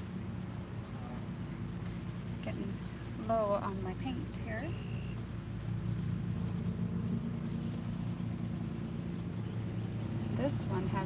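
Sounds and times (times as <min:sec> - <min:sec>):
engine running steadily: 0:00.0 - 0:11.0.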